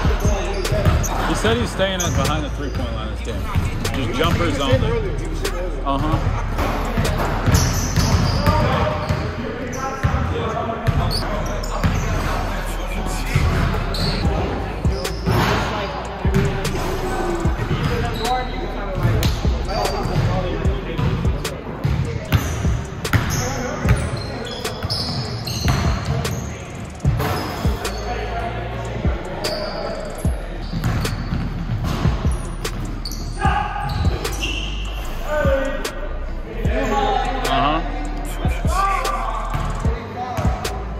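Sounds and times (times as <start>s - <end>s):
players' voices and calls: 0.0s - 40.9s.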